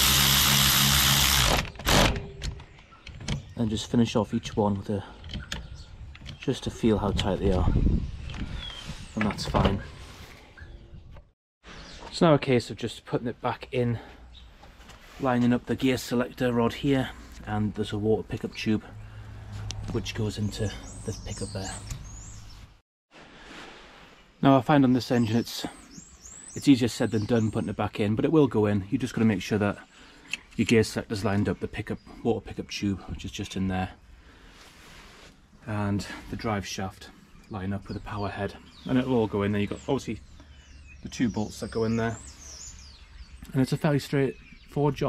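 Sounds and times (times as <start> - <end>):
powered ratchet spinning: 0.0 - 2.1.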